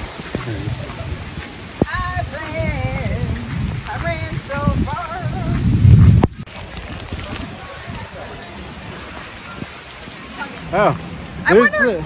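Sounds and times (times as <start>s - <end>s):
heavy rain on pavement: 0.0s - 12.0s.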